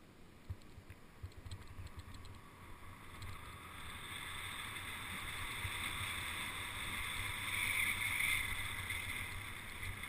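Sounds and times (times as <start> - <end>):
bike clicks and rattles: 0.4 - 2.5, 3.1 - 10.0
wind noise on microphone: 0.4 - 10.0.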